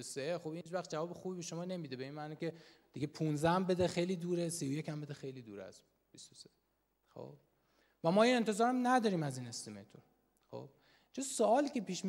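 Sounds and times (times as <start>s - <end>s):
man breathing: 2.6s - 2.9s, 10.8s - 11.1s.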